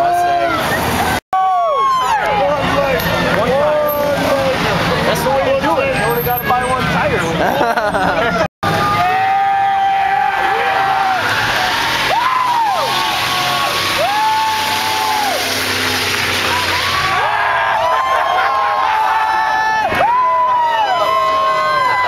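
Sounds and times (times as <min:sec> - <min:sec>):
crowd cheering: 0:00.0 - 0:22.0
truck engine running hard: 0:02.2 - 0:19.9.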